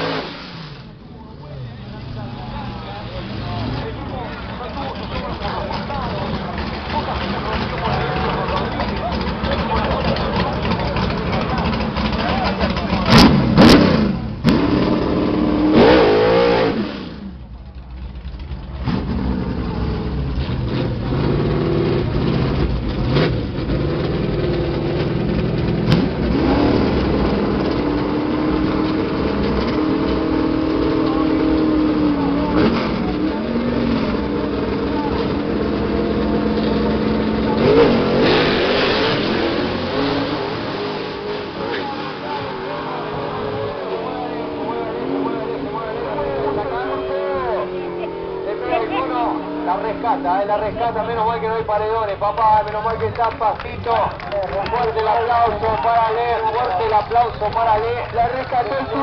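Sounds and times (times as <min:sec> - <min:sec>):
race car engines idling: 0:00.0 - 0:15.8, 0:16.4 - 0:59.0
race car engines revving: 0:00.0 - 0:59.0.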